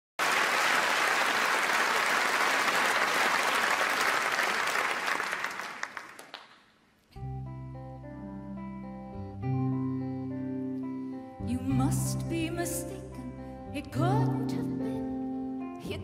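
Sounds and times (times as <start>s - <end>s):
audience applauding: 0.2s - 6.8s.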